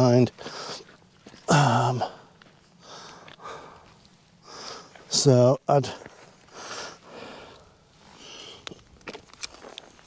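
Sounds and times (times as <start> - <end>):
man breathing: 0.4 - 5.1, 5.9 - 8.8.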